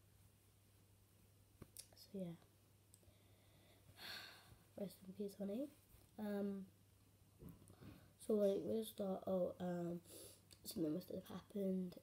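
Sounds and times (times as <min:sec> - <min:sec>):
faint low hum: 0:00.0 - 0:12.0
person speaking softly: 0:01.8 - 0:02.5, 0:04.7 - 0:06.8.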